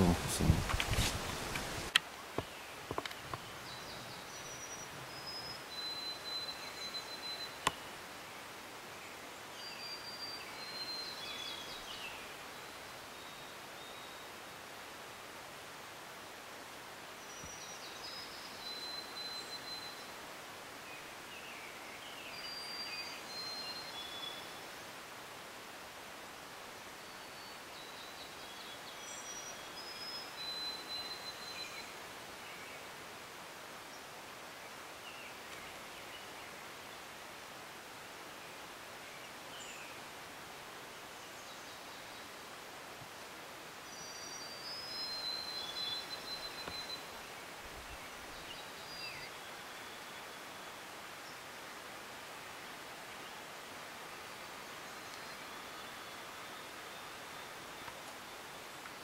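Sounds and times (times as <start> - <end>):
steady faint hiss: 0.0 - 59.0
songbird singing whistled notes: 3.2 - 7.8, 9.5 - 12.2, 17.2 - 20.2, 20.9 - 24.6, 27.0 - 32.8, 43.8 - 51.4.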